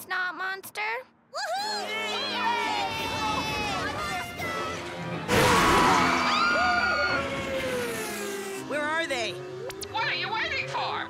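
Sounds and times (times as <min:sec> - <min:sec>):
cartoon vehicle whine: 0:04.6 - 0:10.0.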